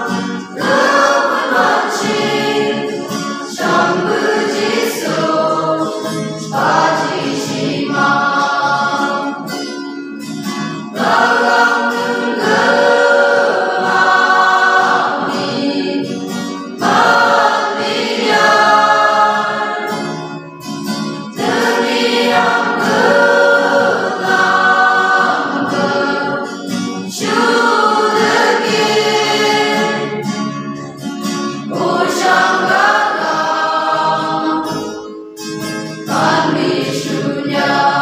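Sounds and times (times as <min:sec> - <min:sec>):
choir singing: 0:00.0 - 0:09.8, 0:10.8 - 0:30.7, 0:31.3 - 0:38.0
acoustic guitar: 0:00.0 - 0:38.0.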